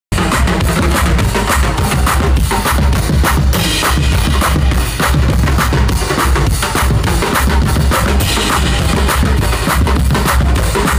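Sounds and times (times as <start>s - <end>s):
bass drum and snare strokes: 0.1s - 10.9s
deep heavy bass line: 0.1s - 10.9s
live band playing: 0.1s - 10.9s.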